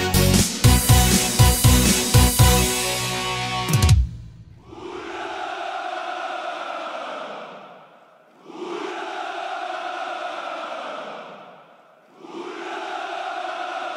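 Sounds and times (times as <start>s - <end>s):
men shouting a cheer in unison: 4.6s - 13.9s.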